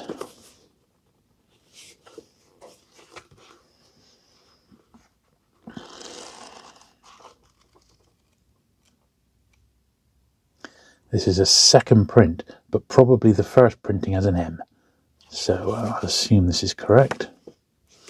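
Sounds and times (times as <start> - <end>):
pages riffling: 5.7 - 8.5
paper rustling: 5.7 - 8.5.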